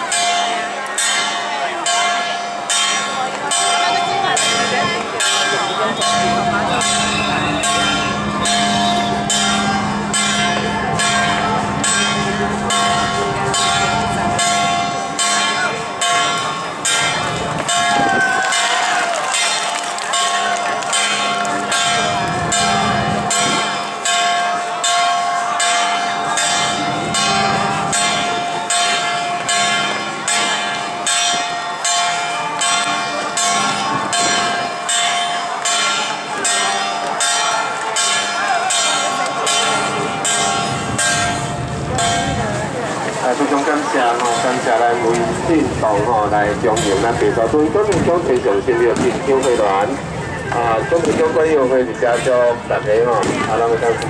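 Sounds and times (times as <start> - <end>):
metal percussion ringing: 0.0 - 52.7
crowd voices: 0.0 - 54.0.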